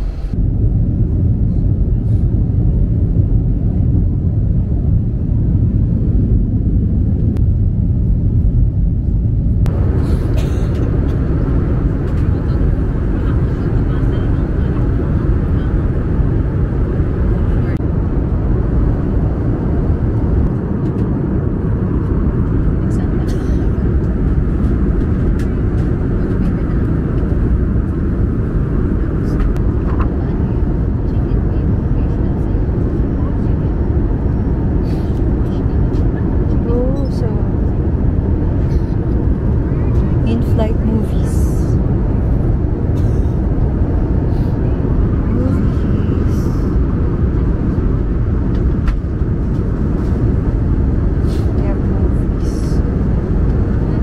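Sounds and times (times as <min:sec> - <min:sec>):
airliner cabin engine rumble: 0:00.0 - 0:54.0.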